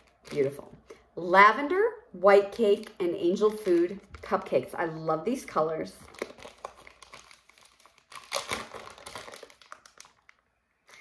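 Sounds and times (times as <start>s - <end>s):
plastic bag crinkling: 6.0s - 11.0s.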